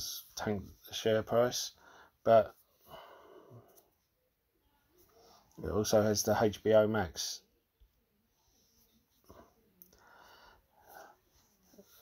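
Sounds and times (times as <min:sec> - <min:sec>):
faint breaths: 0:01.7 - 0:05.6, 0:08.2 - 0:12.0.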